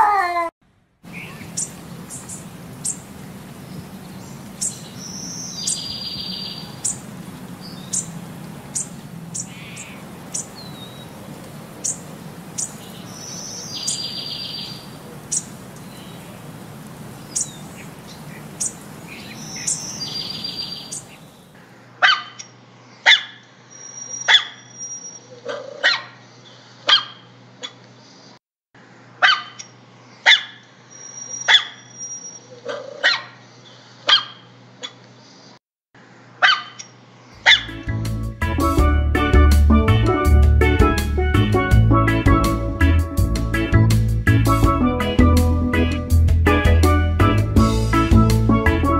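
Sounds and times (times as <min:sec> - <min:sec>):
puppy barking: 0:22.0 - 0:22.4, 0:23.1 - 0:23.4, 0:25.5 - 0:26.2, 0:29.2 - 0:29.6, 0:30.3 - 0:30.6, 0:32.7 - 0:33.4, 0:36.4 - 0:36.8, 0:37.4 - 0:37.7.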